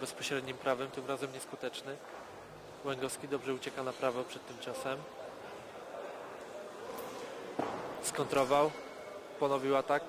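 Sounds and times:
boxing hall background noise: 0.0 - 10.0
thump: 7.6 - 7.9.

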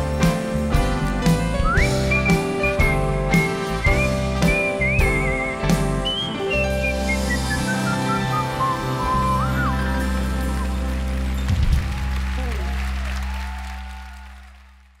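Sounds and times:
live band playing pop song: 0.0 - 12.1.

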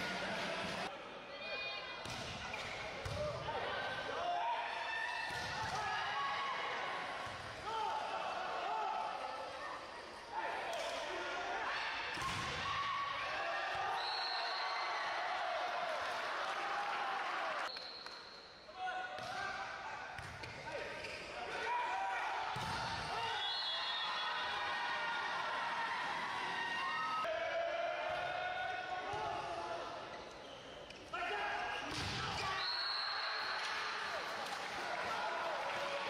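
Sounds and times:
referee whistle blasts: 13.9 - 14.9, 23.2 - 24.3, 32.4 - 33.6.

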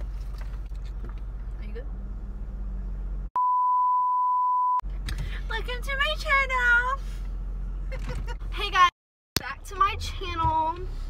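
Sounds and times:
test tone beep: 3.4 - 4.8
car interior rumble: 4.9 - 11.0.

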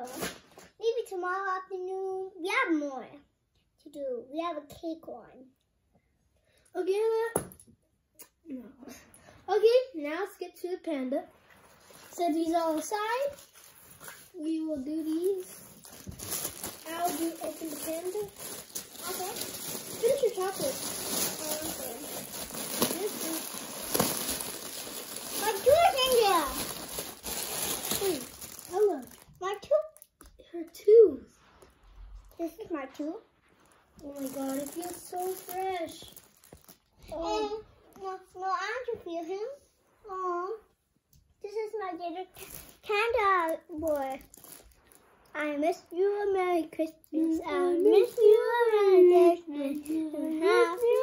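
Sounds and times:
plastic wrap crinkling: 11.3 - 30.2, 32.7 - 37.2, 42.3 - 51.0.

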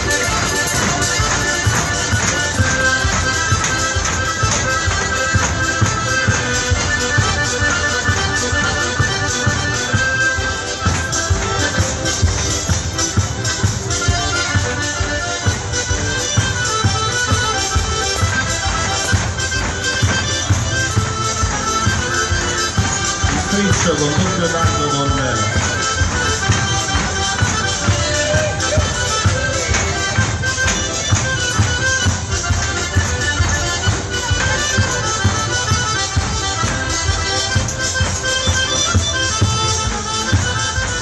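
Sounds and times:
folk dance music from small band: 0.0 - 41.0.

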